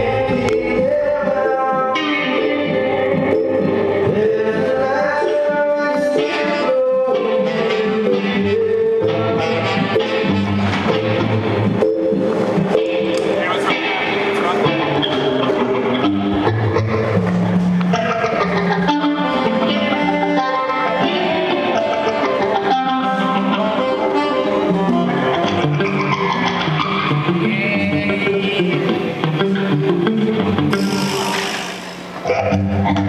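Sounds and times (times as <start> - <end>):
bass guitar: 0.0 - 33.0
drums: 0.0 - 33.0
electric guitars: 0.0 - 33.0
keyboard: 0.0 - 33.0.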